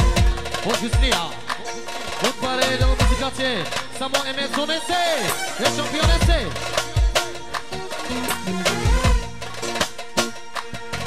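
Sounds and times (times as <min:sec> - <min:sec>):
live band playing dance music: 0:00.0 - 0:11.0.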